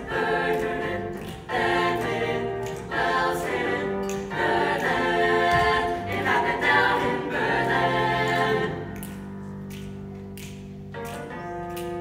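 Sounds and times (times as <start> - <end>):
choir singing held chords: 0.0 - 9.2
piano: 0.0 - 12.0.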